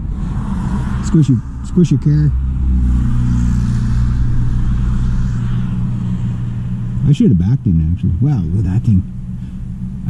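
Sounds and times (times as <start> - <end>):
car engine low hum: 0.0 - 10.0.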